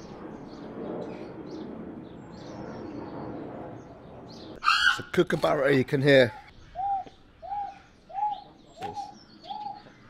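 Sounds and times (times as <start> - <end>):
pigeon cooing: 6.8 - 9.8.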